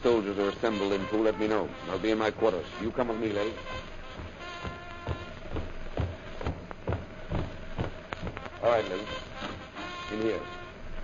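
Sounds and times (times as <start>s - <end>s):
footsteps walking: 2.9s - 10.3s.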